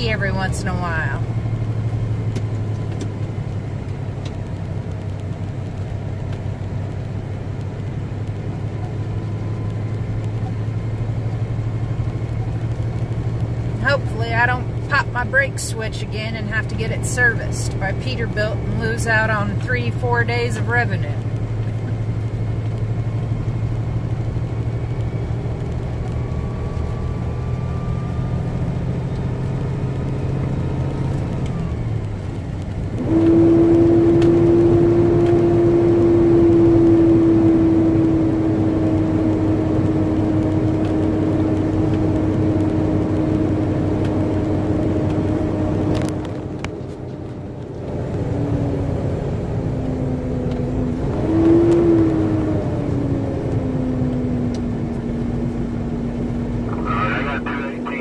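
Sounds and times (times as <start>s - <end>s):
truck diesel engine running: 0.0s - 33.4s, 52.3s - 58.0s.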